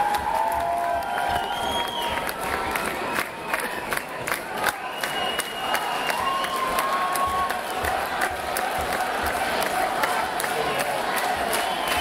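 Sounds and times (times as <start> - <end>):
audience cheering and clapping: 0.0 - 12.0.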